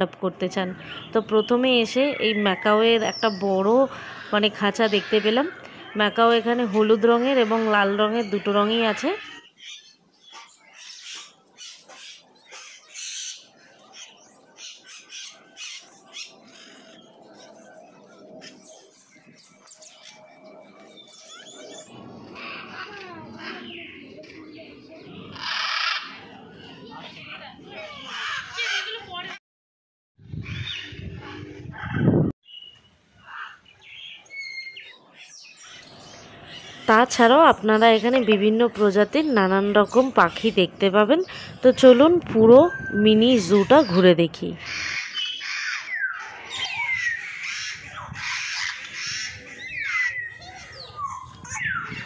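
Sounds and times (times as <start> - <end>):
birds squawking and whistling: 0.5 - 29.4, 30.3 - 52.0
macaws squawking: 2.2 - 6.0, 25.2 - 26.3, 27.9 - 29.0, 44.6 - 52.0.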